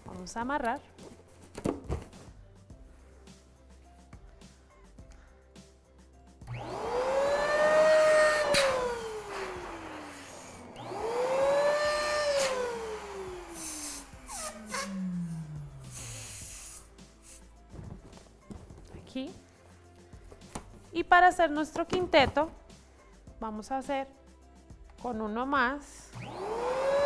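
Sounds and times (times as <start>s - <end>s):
electric balloon inflator whining: 6.4s - 16.9s, 26.1s - 27.0s.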